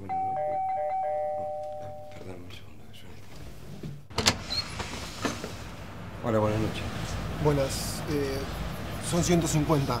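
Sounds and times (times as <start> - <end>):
door swinging clicks and knocks: 4.1 - 4.6.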